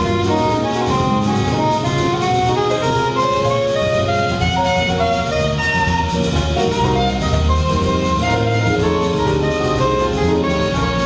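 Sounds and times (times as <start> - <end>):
jazz big band playing: 0.0 - 11.0.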